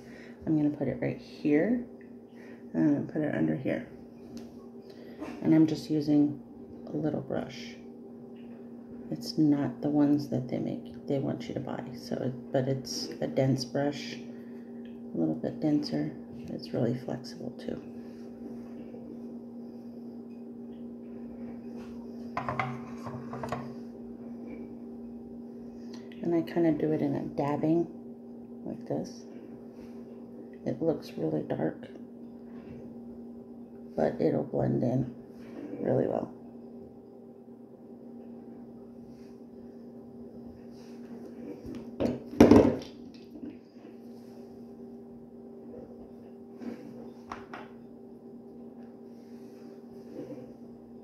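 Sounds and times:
steady low hum: 0.0s - 51.0s.

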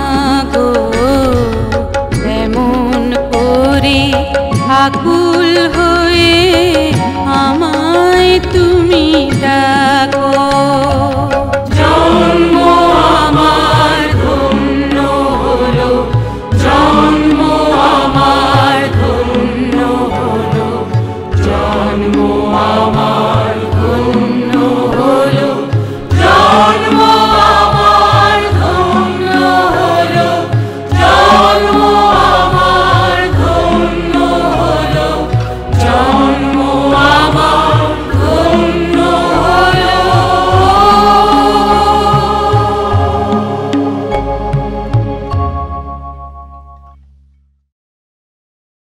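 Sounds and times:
voices singing over instruments: 0.0s - 45.6s.

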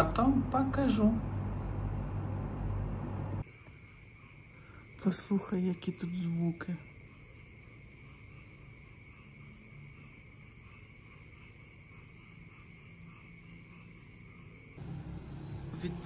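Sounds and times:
night insects calling: 2.2s - 16.0s.

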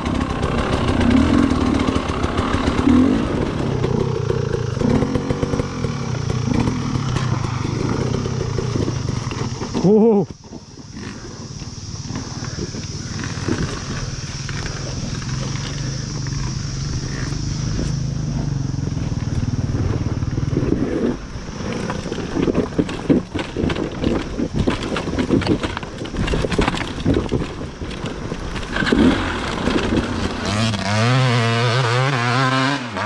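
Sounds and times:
dirt bike engine at low revs: 0.0s - 33.0s
bike knocking over rocks: 3.8s - 11.2s, 21.6s - 30.7s.

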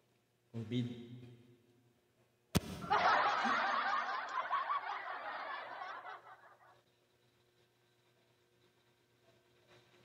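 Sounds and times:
person laughing: 2.8s - 6.7s.

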